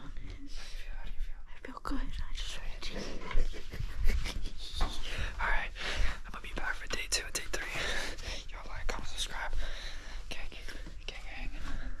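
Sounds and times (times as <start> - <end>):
man whispering: 4.6 - 11.6.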